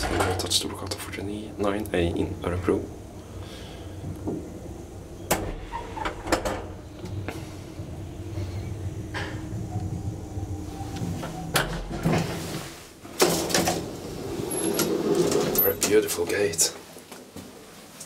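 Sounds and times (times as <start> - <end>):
elevator humming: 0.0 - 16.5.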